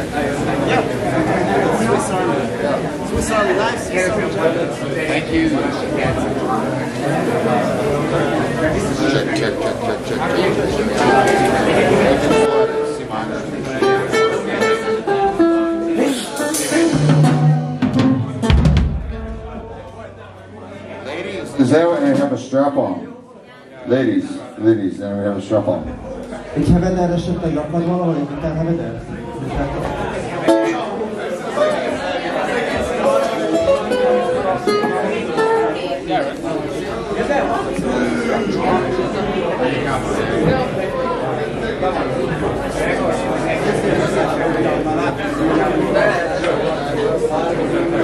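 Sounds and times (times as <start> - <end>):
people talking: 0.0 - 48.0
voices in room: 0.0 - 48.0
acoustic guitar plucked: 11.0 - 21.6, 30.4 - 31.0, 33.1 - 35.8
drum and cymbal hits: 16.1 - 20.7
electric bass guitar notes: 16.6 - 21.8.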